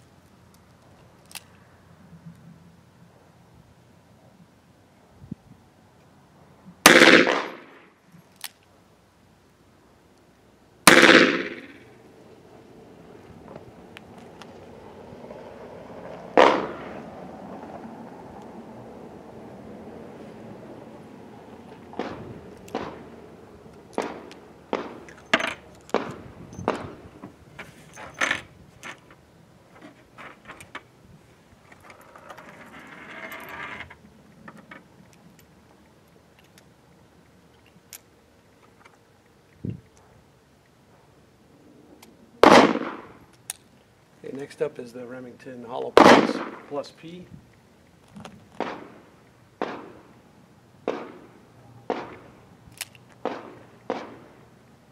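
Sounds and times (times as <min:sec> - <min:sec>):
revolver gunshots with echo: 0:06.9 - 0:07.8, 0:10.9 - 0:11.8, 0:16.4 - 0:17.0, 0:22.0 - 0:23.1, 0:24.0 - 0:25.1, 0:42.4 - 0:43.1, 0:46.0 - 0:46.7, 0:48.6 - 0:49.0, 0:49.6 - 0:50.1, 0:50.8 - 0:52.3, 0:53.2 - 0:54.4.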